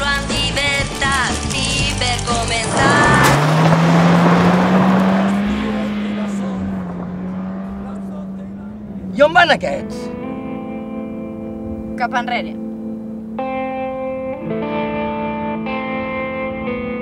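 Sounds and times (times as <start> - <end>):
vehicle tyres on gravel: 0.0 - 10.1
vehicle engine running: 0.0 - 15.5.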